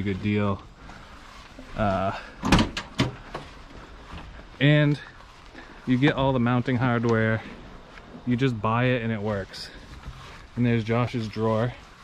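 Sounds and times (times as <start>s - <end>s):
tailgate clunk: 2.4s - 3.4s.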